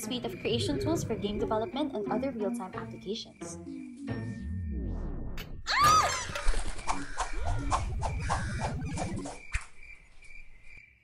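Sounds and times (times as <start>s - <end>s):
low tone rising in pitch: 3.6s - 5.7s
cartoon character screaming: 5.7s - 6.3s.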